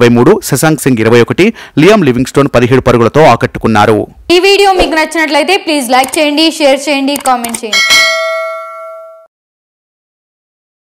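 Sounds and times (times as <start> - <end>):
bell-like notification chime: 7.7 - 9.3.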